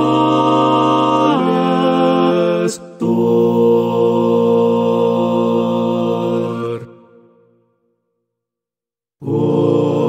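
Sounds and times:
male a cappella choir chord: 0:00.0 - 0:07.2, 0:09.2 - 0:10.0.

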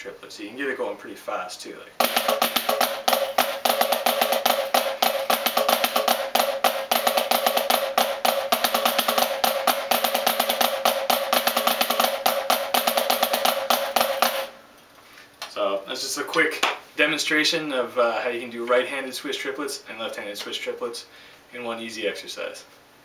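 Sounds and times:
drumsticks on practice pad: 0:02.0 - 0:14.6.

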